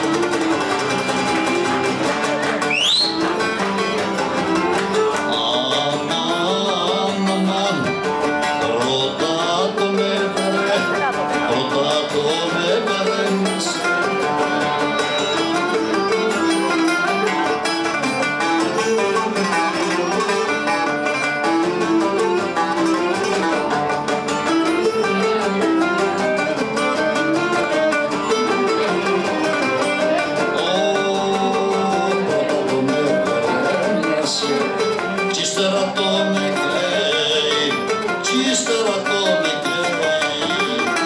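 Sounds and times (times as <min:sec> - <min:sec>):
strummed lute accompaniment: 0:00.0 - 0:41.0
bowed lyra melody: 0:12.6 - 0:41.0.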